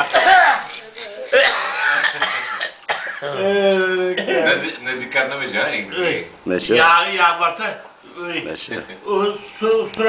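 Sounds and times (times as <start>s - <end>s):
person clearing throat: 0.2s - 3.4s.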